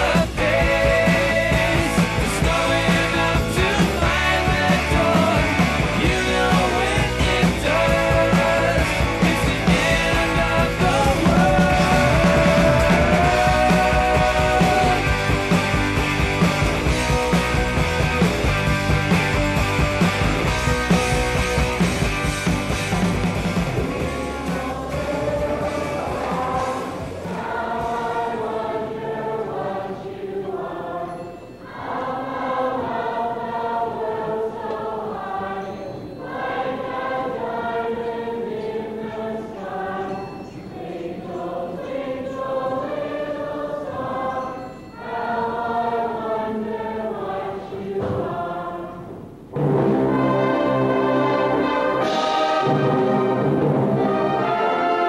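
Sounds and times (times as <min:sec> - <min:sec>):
choir singing in parts: 0:00.0 - 0:19.7, 0:23.7 - 0:55.0
loud instrumental music: 0:00.0 - 0:28.7, 0:49.6 - 0:55.0.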